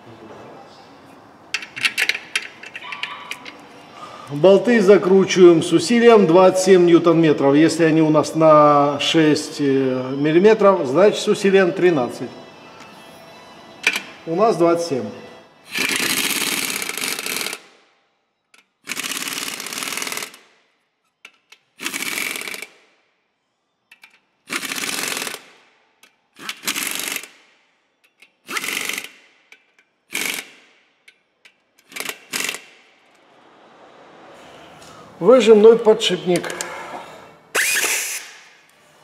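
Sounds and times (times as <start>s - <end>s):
pneumatic wrench bursts: 15.6s - 17.7s, 18.8s - 20.4s, 21.4s - 22.8s, 24.0s - 25.6s, 26.4s - 27.4s, 28.2s - 29.2s, 30.1s - 30.8s, 31.8s - 32.8s, 37.5s - 38.7s.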